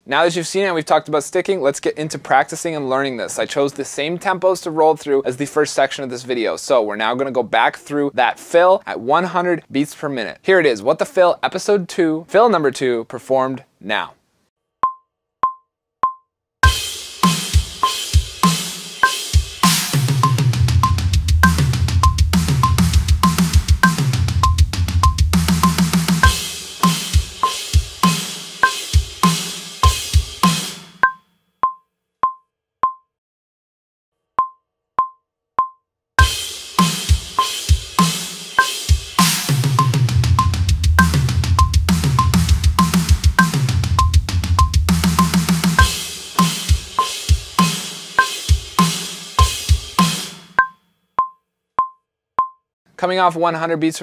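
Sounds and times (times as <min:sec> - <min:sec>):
double-kick drum strokes: 0:16.6 - 0:30.8, 0:36.2 - 0:50.4
cymbals: 0:16.6 - 0:31.0, 0:36.2 - 0:50.6
drum kit playing: 0:16.6 - 0:31.2, 0:36.2 - 0:50.7
metronome clicking: 0:20.2 - 0:26.4, 0:31.0 - 0:33.0, 0:39.8 - 0:43.0, 0:44.0 - 0:44.8, 0:48.2 - 0:48.4, 0:50.6 - 0:52.6
metronome click: 0:31.0 - 0:33.0, 0:50.6 - 0:52.6.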